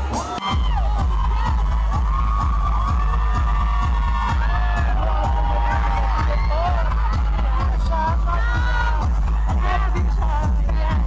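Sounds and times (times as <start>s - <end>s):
crowd screaming and cheering: 0.0s - 11.0s
dance music with heavy bass: 0.0s - 11.0s.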